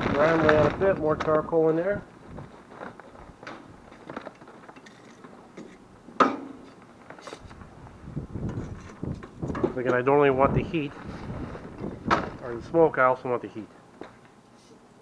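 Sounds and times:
charcoal clicks and rustles: 0.0s - 13.0s.

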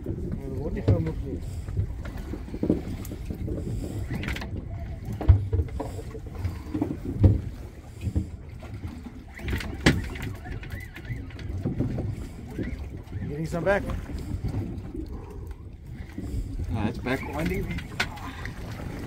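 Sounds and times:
small boat engine rumble: 0.0s - 19.0s
wind on microphone: 0.0s - 19.0s.

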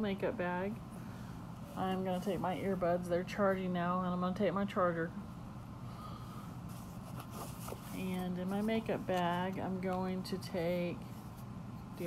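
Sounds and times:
low steady hum: 0.0s - 12.0s
fabric bag rustling: 6.6s - 9.5s.

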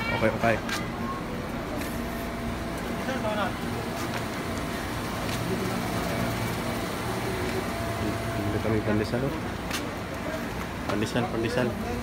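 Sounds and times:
traffic hum: 0.0s - 12.0s.

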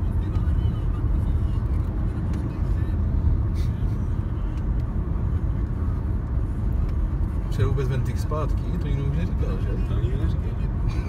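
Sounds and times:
road and engine noise inside car: 0.0s - 11.0s.

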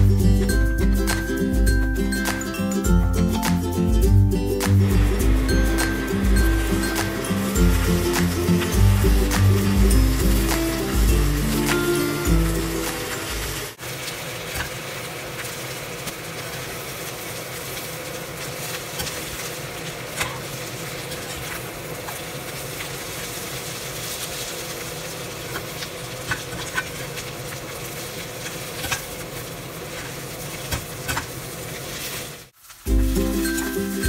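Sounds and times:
food sizzling in a pan: 4.6s - 34.0s.

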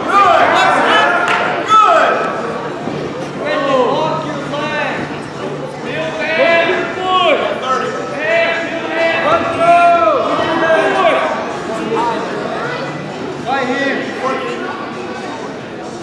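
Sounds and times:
people shouting in a gym: 0.0s - 15.4s.

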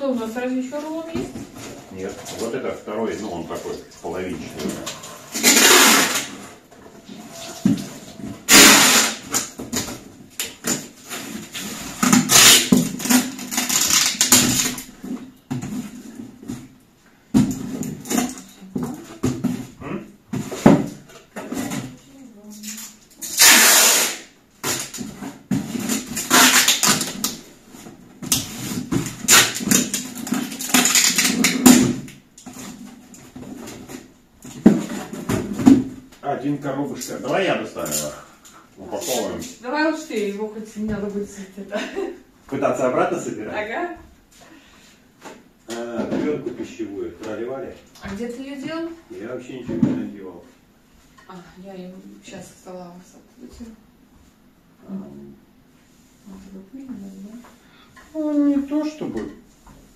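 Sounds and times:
packing tape rasping off roll: 5.3s - 6.4s, 7.3s - 15.0s, 22.6s - 25.1s, 25.7s - 27.4s, 28.3s - 33.2s.

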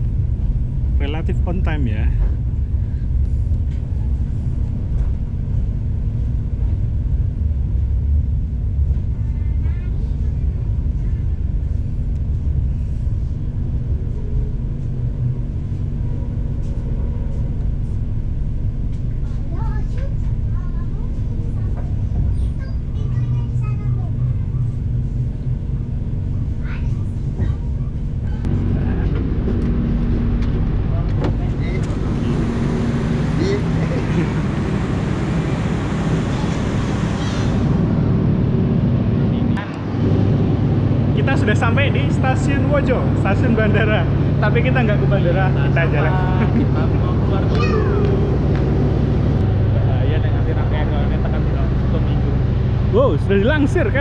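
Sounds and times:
train rumble and hum: 0.0s - 54.0s.

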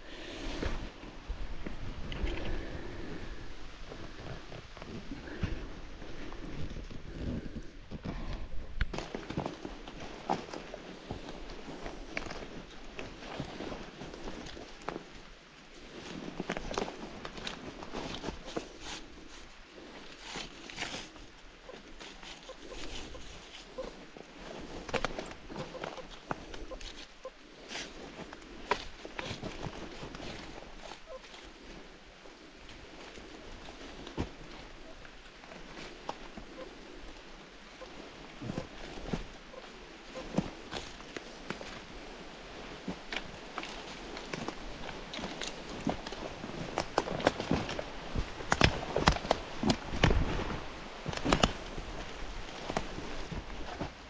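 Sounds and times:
footsteps on leaves and twigs: 0.0s - 54.0s.

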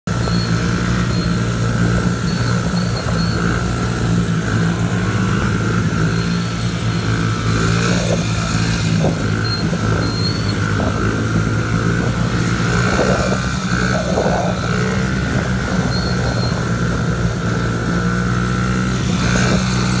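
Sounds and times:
dirt bike engine steady: 0.0s - 20.0s
other dirt bikes running: 0.0s - 20.0s.

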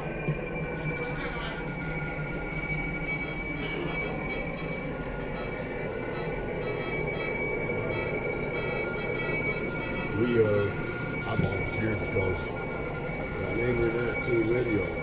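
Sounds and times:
high whining tones: 0.0s - 15.0s
machine hum: 0.0s - 15.0s.

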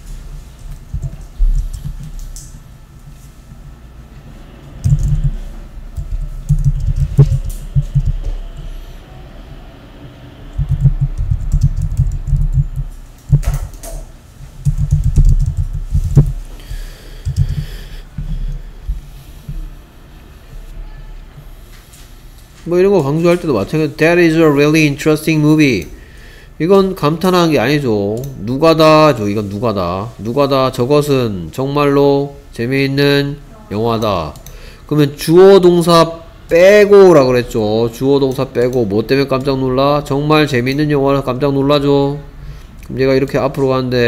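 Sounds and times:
typing on computer keyboard: 4.8s - 8.7s, 10.5s - 16.4s, 17.2s - 17.7s.

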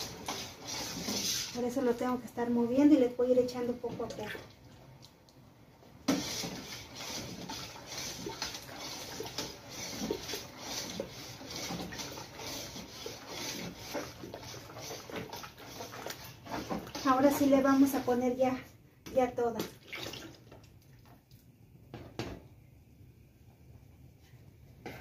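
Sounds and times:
metal spoon scraping a pot: 0.0s - 1.7s, 6.1s - 17.6s
liquid sloshing: 6.2s - 17.6s, 19.6s - 21.5s.

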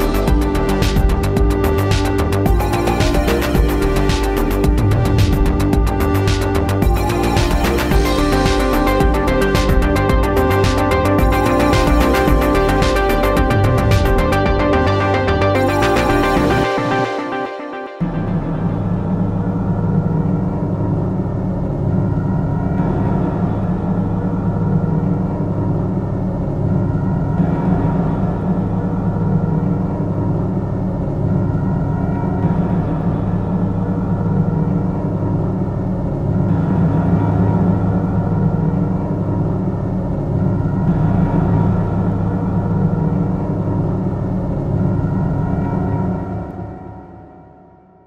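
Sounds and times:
layered synths: 0.0s - 47.4s
low synth bass: 0.0s - 48.0s.

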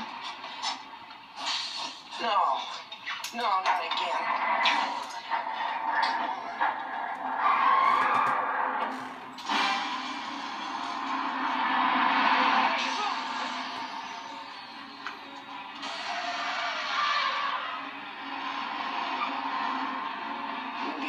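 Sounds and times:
dramatic film music: 0.0s - 21.0s
film sound effects: 0.0s - 21.0s.

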